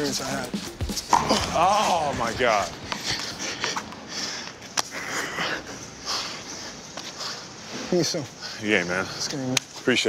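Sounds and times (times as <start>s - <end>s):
outdoor hiss: 0.0s - 10.0s
people breathing hard: 2.6s - 9.5s.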